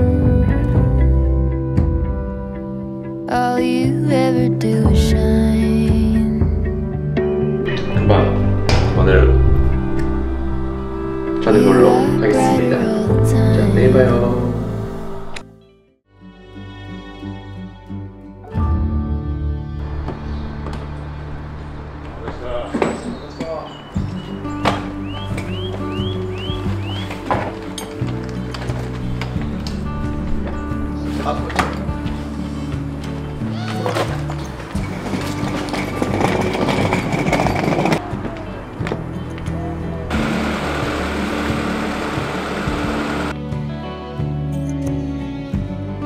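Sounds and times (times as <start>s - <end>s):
background music low notes: 0.0s - 46.0s.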